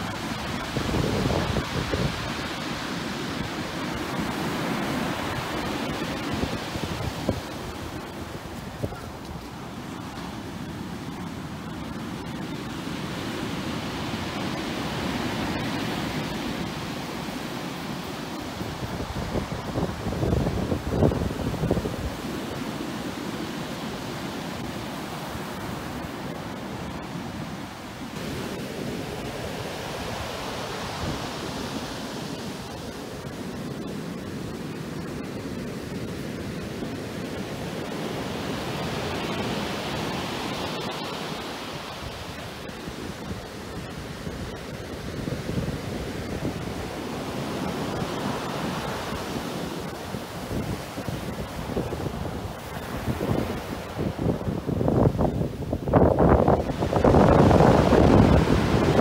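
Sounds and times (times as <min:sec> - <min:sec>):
wind buffeting microphone: 0:00.0 - 0:09.8, 0:18.0 - 0:22.7, 0:42.1 - 0:59.0
surf breaking on beach: 0:00.0 - 0:59.0.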